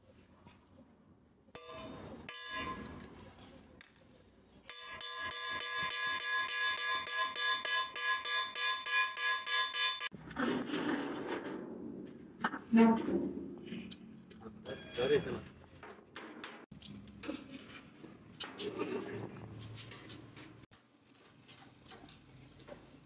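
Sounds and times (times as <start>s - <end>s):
hammer striking steel on anvil: 1.6s - 3.2s, 4.7s - 10.1s.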